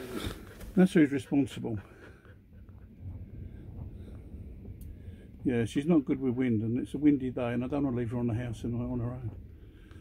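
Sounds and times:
dog panting: 0:01.1 - 0:03.4
wind buffeting microphone: 0:01.6 - 0:10.0.

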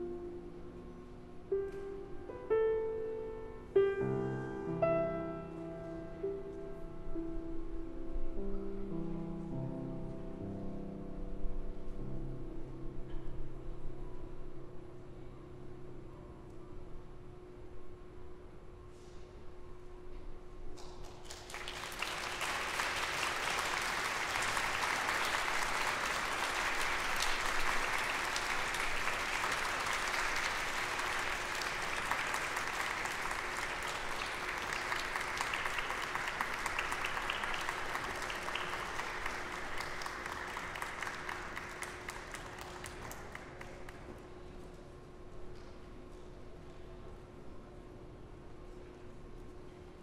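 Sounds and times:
audience clapping: 0:20.8 - 0:44.2.

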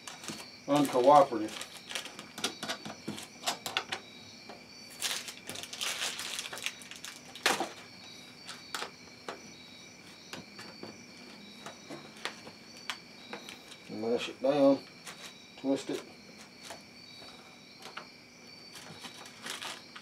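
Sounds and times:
rustle: 0:18.7 - 0:20.0.

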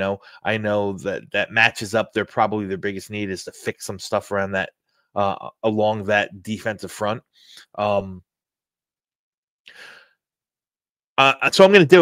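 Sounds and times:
man breathing: 0:07.3 - 0:07.8, 0:09.7 - 0:10.2.

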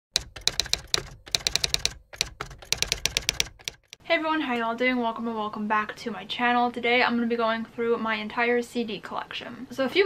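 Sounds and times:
keyboard typing clicks: 0:00.2 - 0:04.0.

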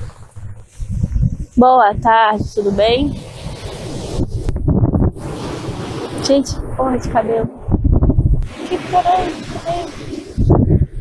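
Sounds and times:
surf breaking on beach: 0:00.0 - 0:01.6, 0:02.3 - 0:11.0
wind buffeting microphone: 0:00.0 - 0:11.0.

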